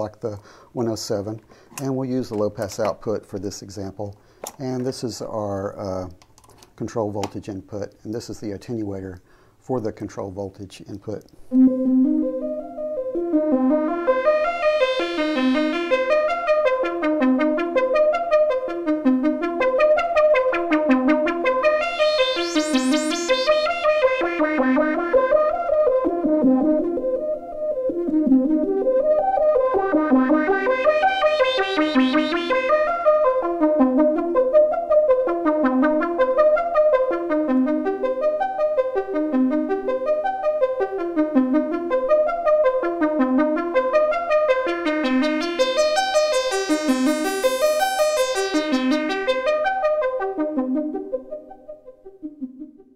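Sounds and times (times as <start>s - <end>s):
synthesizer repeating note pattern: 11.5s - 52.9s.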